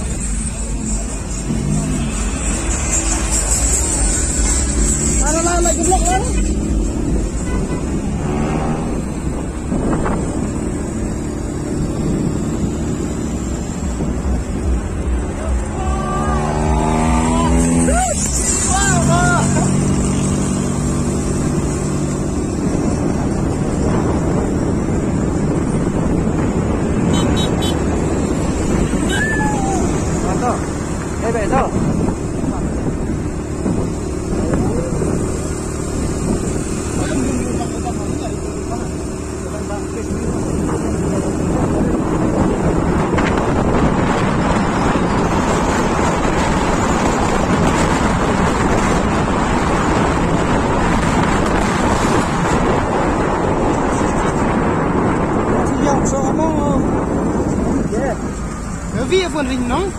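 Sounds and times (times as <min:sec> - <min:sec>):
vehicle engine and road rumble: 0:00.0 - 0:59.9.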